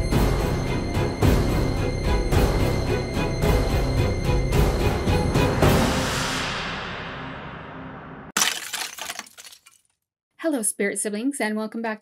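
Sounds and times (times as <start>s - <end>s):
glass shattering: 8.4s - 9.9s.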